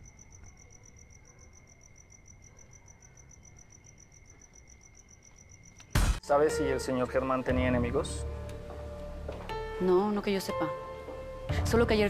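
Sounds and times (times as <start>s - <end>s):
crickets chirping: 0.0s - 6.2s.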